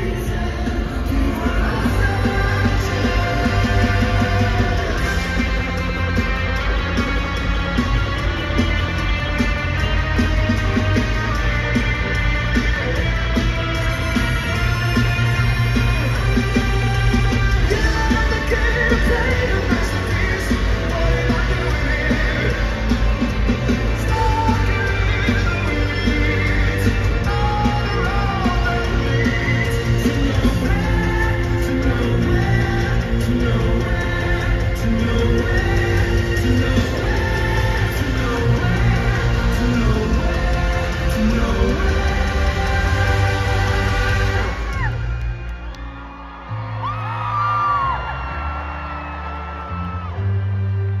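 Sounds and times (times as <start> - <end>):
steady drum beat: 0.0 - 45.2
heavy bass: 0.0 - 51.0
live rock band playing: 0.0 - 51.0
audience voices shrieking: 44.4 - 50.4.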